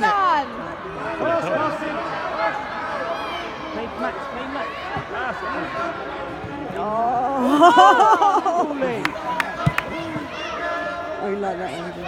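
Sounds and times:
voices calling out and chattering: 0.0s - 12.0s.

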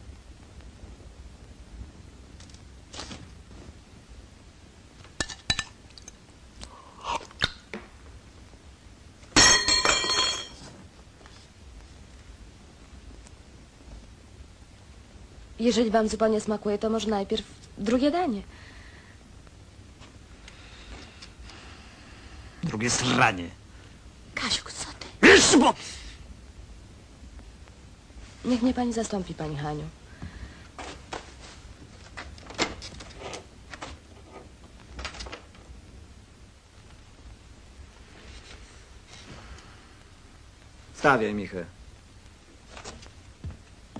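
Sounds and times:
broken pieces clinking: 9.4s - 10.6s
crockery smashing: 9.4s - 10.6s.

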